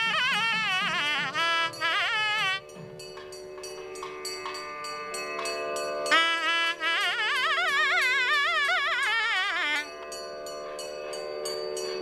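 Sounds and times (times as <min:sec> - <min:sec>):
drone of held notes: 0:00.0 - 0:12.0
light rhythmic clicks: 0:00.0 - 0:12.0
loud reedy wind melody: 0:00.0 - 0:12.0.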